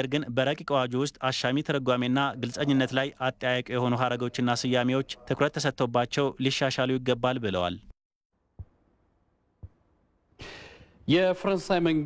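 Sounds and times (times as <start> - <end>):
man breathing in: 10.4 - 11.0.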